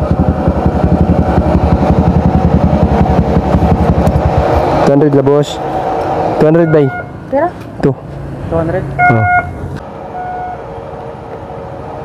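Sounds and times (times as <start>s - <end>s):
motorcycle engine idling: 0.0s - 4.5s.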